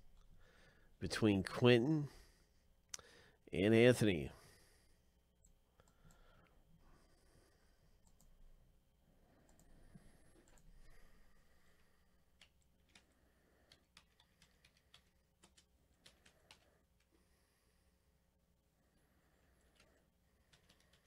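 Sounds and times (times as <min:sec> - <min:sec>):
computer keyboard typing: 0:10.4 - 0:10.8, 0:12.3 - 0:17.1, 0:19.6 - 0:21.0.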